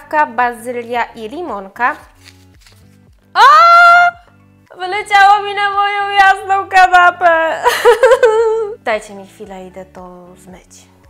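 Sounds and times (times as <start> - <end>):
quiet background music: 0.0 - 11.0
woman crying out in surprise: 3.4 - 4.2.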